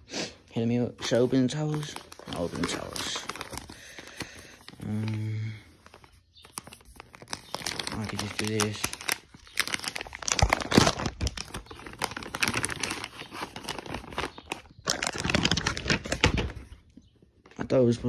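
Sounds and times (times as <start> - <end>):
plastic packaging crinkling: 0.8 - 17.6.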